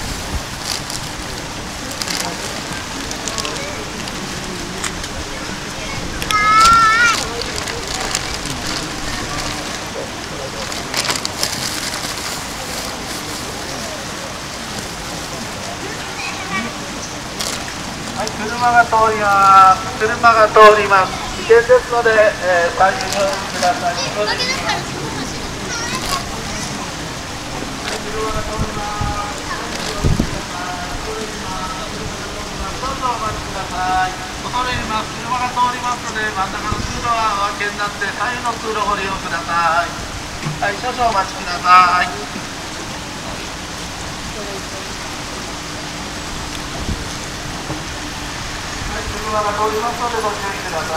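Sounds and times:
shallow water rushing over step: 0:00.0 - 0:50.9
people talking: 0:01.6 - 0:42.5, 0:44.2 - 0:45.6, 0:48.8 - 0:50.9.

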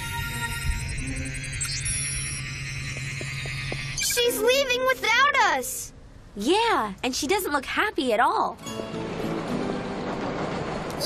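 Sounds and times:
low steady drone: 0:00.0 - 0:05.1
sustained chords: 0:00.0 - 0:05.1.

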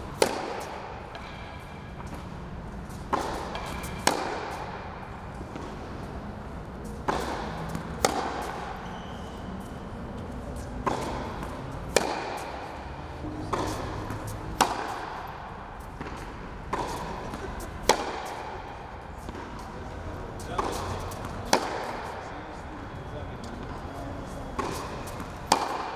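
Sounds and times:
tennis ball bouncing: 0:00.0 - 0:22.3, 0:23.4 - 0:25.9
racket striking tennis ball: 0:00.0 - 0:22.6, 0:24.4 - 0:25.9.

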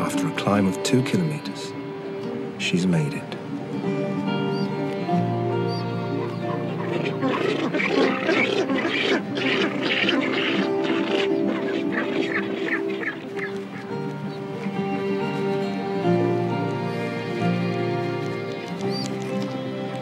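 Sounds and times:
background music: 0:00.0 - 0:20.0
penguins rasping calls: 0:04.2 - 0:19.3.

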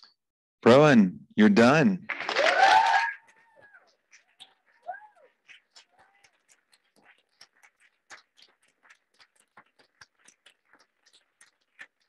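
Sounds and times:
audience applause: 0:02.1 - 0:03.9
faint high calls from crowd: 0:02.3 - 0:06.5.

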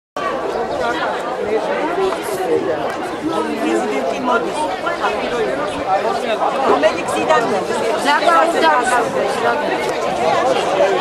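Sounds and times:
crowd chatter: 0:00.2 - 0:11.0.

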